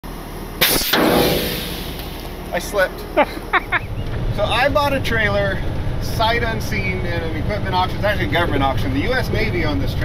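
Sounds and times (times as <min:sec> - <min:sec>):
sudden loud noise bursts: 0:00.6 - 0:02.8.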